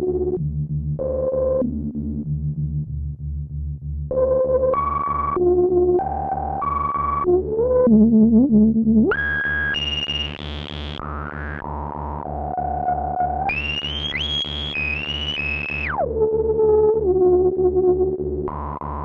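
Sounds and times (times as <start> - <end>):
synthesizer with resonant filter: 0.0 - 19.0.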